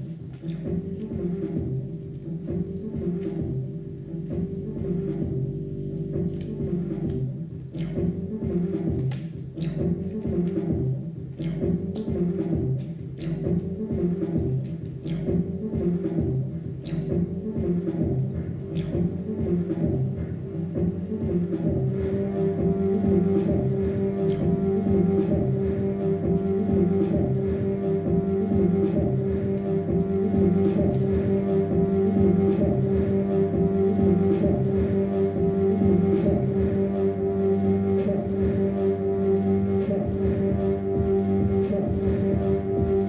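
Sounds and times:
low pulsing synthesizer drone: 0.0 - 43.0.

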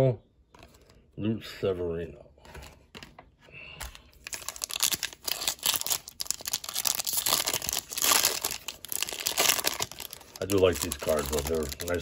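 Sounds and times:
foil wrapper tearing and crinkling: 4.2 - 12.0.

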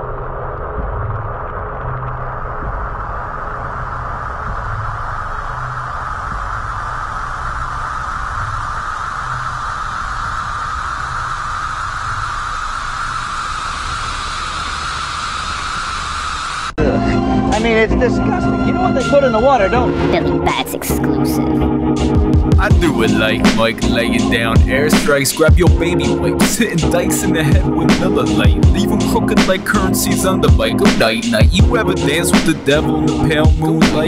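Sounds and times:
rushing static-like noise: 0.0 - 16.8, 21.8 - 34.0
low rumble: 0.0 - 34.0.

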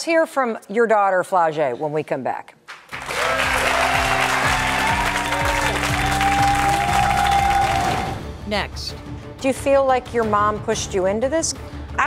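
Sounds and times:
audience applauding: 2.7 - 8.2.

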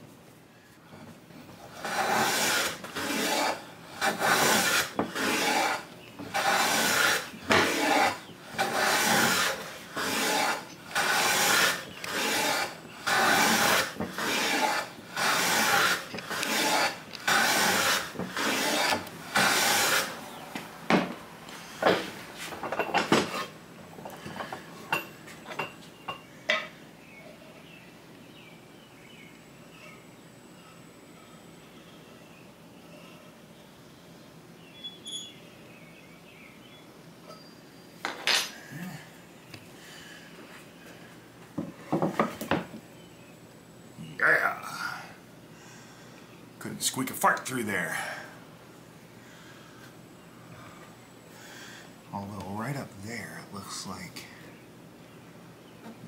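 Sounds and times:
hand plane shaving wood: 1.7 - 20.2.

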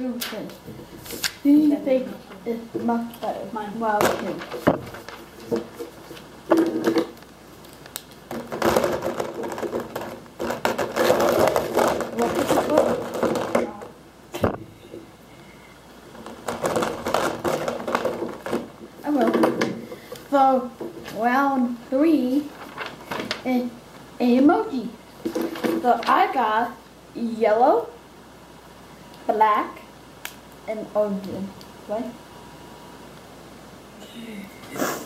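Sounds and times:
paper rustling: 0.2 - 1.7, 2.3 - 13.8, 16.2 - 19.3, 22.2 - 23.5.

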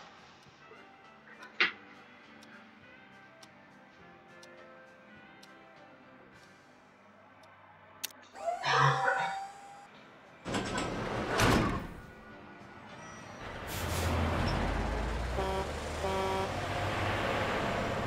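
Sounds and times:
background music: 0.0 - 18.0
truck engine rumbling: 13.4 - 18.0
vehicle whooshing past: 13.4 - 18.0
horn honks: 15.2 - 16.9.

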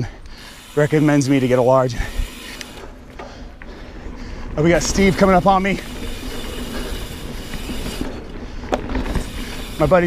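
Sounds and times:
bike ticks and rattles: 0.0 - 10.0
knobby tyres rumbling on dirt: 0.0 - 10.0.

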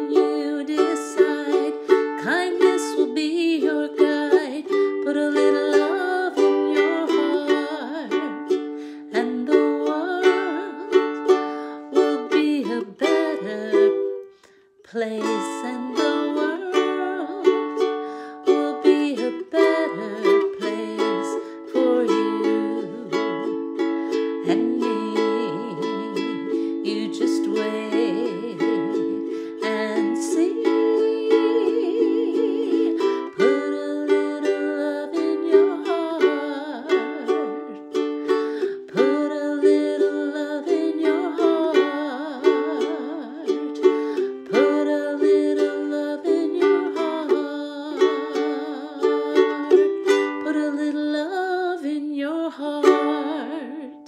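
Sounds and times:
ukulele strummed in chords: 0.0 - 54.0.

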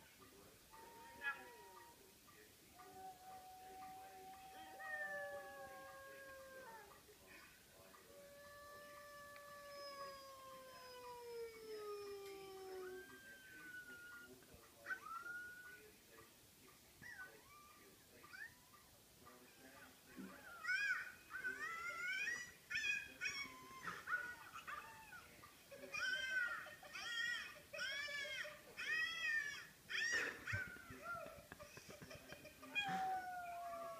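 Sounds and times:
dog howling: 0.7 - 2.0, 2.8 - 7.0, 8.0 - 15.9, 32.6 - 33.9
dog whining: 8.0 - 15.8, 28.8 - 31.1, 32.6 - 33.9.

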